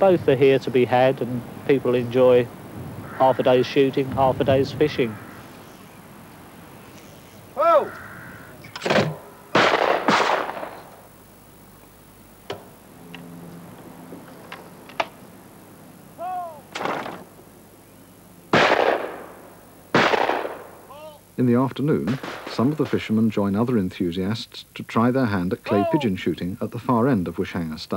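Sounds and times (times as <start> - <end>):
shotgun shots: 8.8 - 11.0, 18.5 - 20.8, 22.1 - 22.8.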